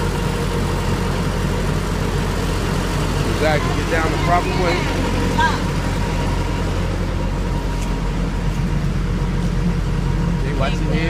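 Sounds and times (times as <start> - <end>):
truck engine idling: 0.0 - 11.0.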